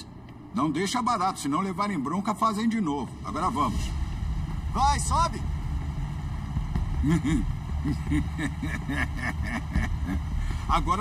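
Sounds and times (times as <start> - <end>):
deck machinery running: 0.0 - 11.0
boat engine rumble: 3.1 - 11.0.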